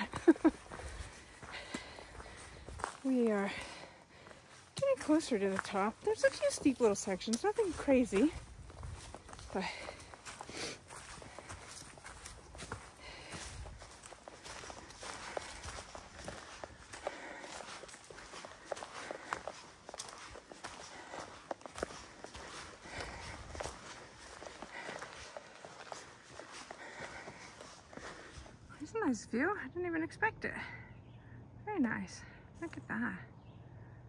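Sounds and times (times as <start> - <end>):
footsteps on dirt and rock trail: 0.0 - 28.9.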